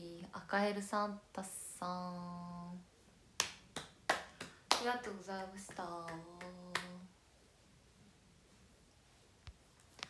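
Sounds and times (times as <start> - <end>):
woman clapping hands: 3.4 - 7.0.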